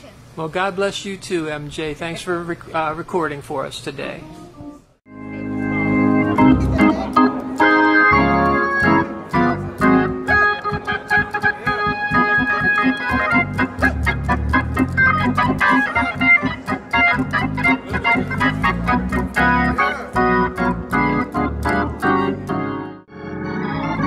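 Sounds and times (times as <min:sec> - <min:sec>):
hammond organ chords and runs: 0:05.1 - 0:24.0.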